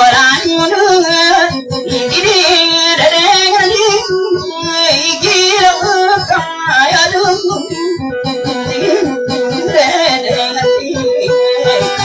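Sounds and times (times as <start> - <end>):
person singing ornamented melody: 0.0 - 12.0
plucked acoustic guitar: 0.0 - 12.0.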